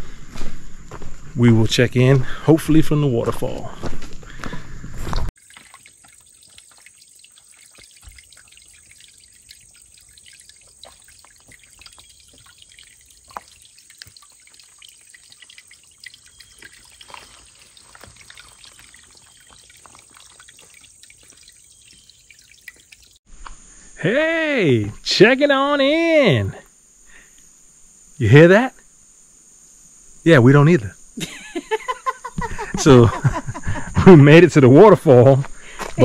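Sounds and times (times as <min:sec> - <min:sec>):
small water drips: 0:05.4 - 0:23.2
water trickling down rock: 0:05.4 - 0:23.2.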